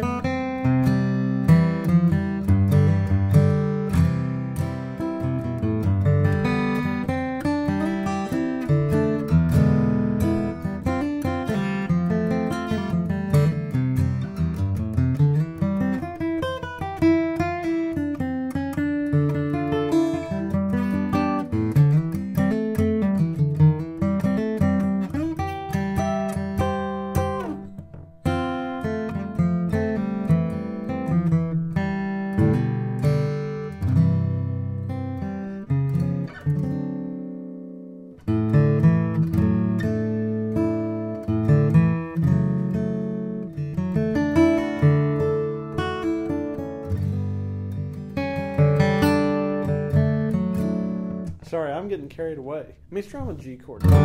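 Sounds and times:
acoustic guitar picking: 0.0s - 54.0s.

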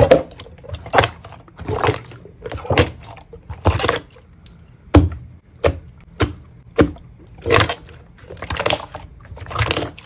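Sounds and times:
crackly slime squishes: 0.0s - 10.0s.

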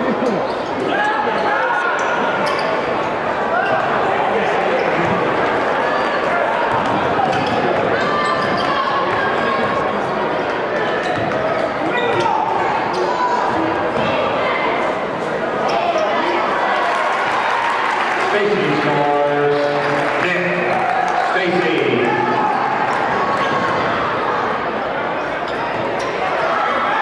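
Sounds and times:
crowd chatter and calls: 0.0s - 27.0s.

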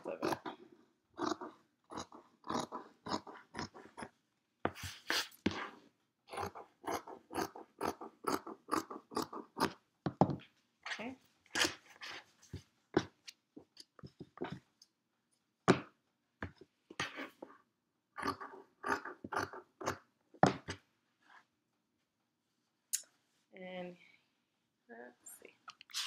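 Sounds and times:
scissors cutting fabric: 4.8s - 9.8s.

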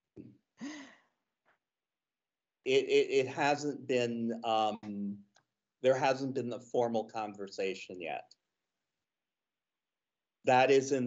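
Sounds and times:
person sighing: 2.7s - 5.1s.

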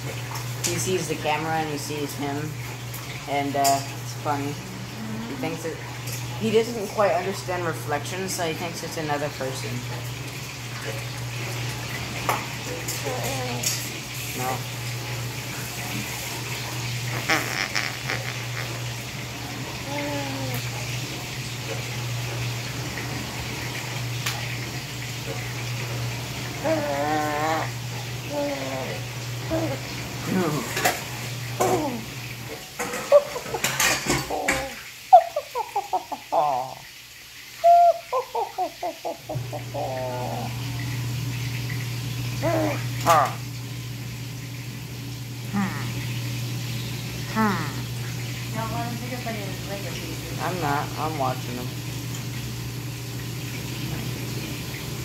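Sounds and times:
running water: 0.0s - 55.0s
baby babbling: 13.0s - 13.8s, 17.1s - 18.9s, 19.8s - 20.8s, 26.6s - 29.9s, 31.6s - 32.1s, 34.0s - 34.8s, 37.6s - 40.6s, 42.4s - 43.4s
baby squealing: 17.1s - 18.9s, 26.6s - 29.8s.

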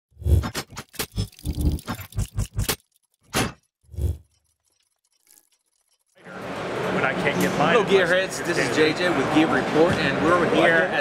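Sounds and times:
sharp mechanical clicks: 0.4s - 6.2s.

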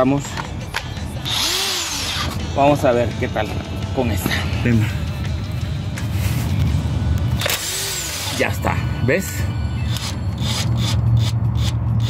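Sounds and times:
background music: 0.0s - 12.0s
impact wrench burst: 7.4s - 8.4s.

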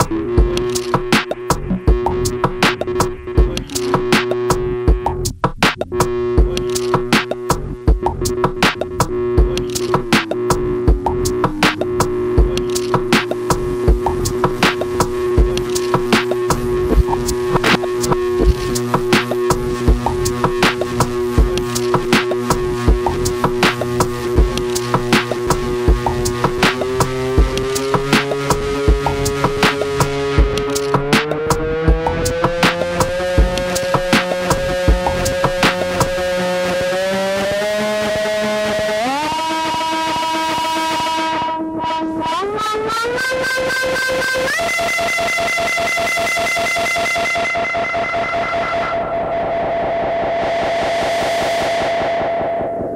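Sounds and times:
steady ticking pulse: 0.0s - 42.2s, 42.8s - 52.9s
synth drone: 0.0s - 52.9s
deep kick drum: 0.4s - 29.8s, 30.4s - 36.2s
snare-like hits: 6.7s - 7.5s, 9.6s - 10.5s, 11.5s - 12.0s, 14.6s - 15.0s, 26.6s - 27.0s, 27.6s - 28.5s, 29.6s - 31.6s, 32.5s - 33.2s, 34.1s - 34.6s, 35.6s - 36.1s.

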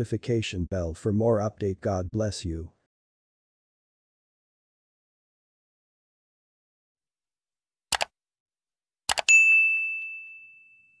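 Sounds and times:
mouse clicks: 7.9s - 8.1s
notification bell ding: 9.2s - 11.0s.

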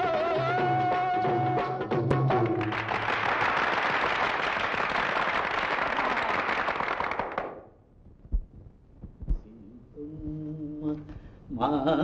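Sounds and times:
audience applause: 2.4s - 7.7s.

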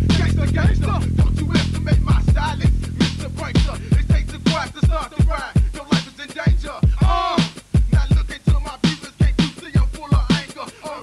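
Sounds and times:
rapping over deep kick drums: 0.0s - 11.0s.

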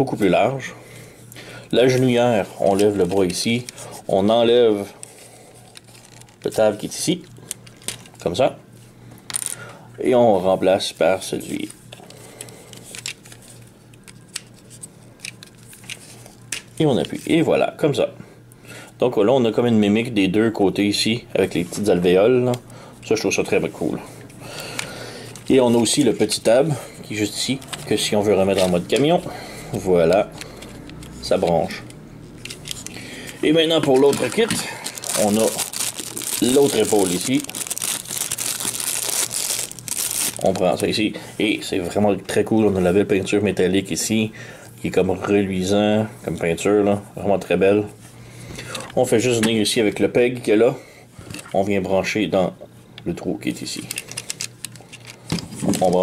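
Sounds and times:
faint steady hum: 0.0s - 56.0s
plastic bag crinkling: 5.6s - 8.2s, 32.5s - 41.0s, 53.8s - 56.0s
plastic toy parts clicking: 53.9s - 55.2s.

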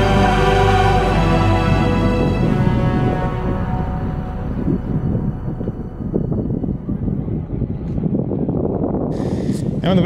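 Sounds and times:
background music: 0.0s - 9.0s
wind buffeting microphone: 1.8s - 10.0s.

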